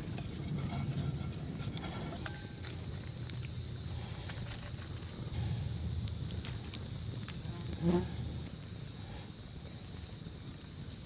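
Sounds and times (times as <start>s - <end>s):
fly buzzing past: 7.5s - 8.2s.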